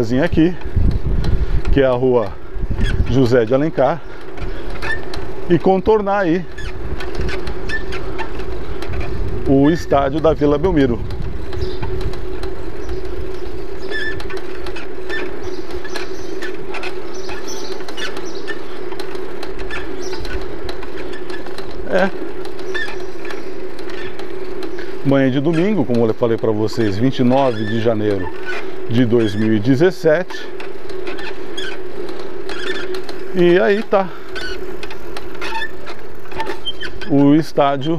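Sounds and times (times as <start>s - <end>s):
bicycle rolling along street: 0.0s - 37.9s
small rattling clicks: 0.0s - 37.9s
steady hum: 0.0s - 37.9s
wind and tyres on asphalt: 0.0s - 37.9s
high bike squeaks: 2.7s - 5.4s, 6.4s - 10.3s, 12.6s - 37.9s.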